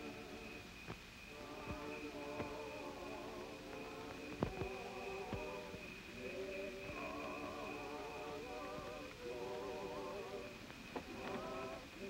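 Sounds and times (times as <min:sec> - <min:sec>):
crickets chirping: 0:00.0 - 0:12.0
distant choir singing a hymn: 0:00.0 - 0:12.0.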